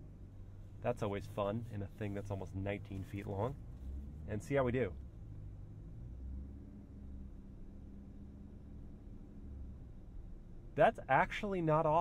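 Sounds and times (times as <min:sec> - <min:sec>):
car engine low hum: 0:00.0 - 0:12.0.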